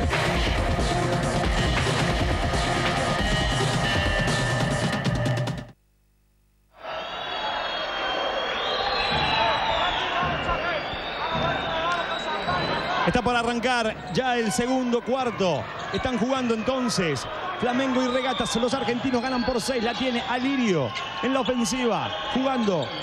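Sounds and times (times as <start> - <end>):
arena crowd noise: 6.8 - 23.0.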